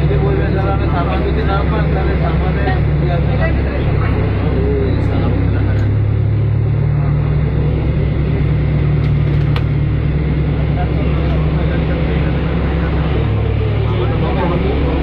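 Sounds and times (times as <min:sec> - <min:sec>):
vehicle engine drone from inside: 0:00.0 - 0:15.0.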